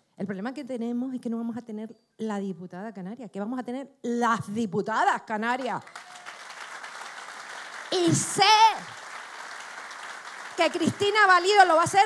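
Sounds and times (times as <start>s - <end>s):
audience applauding: 5.6s - 12.0s.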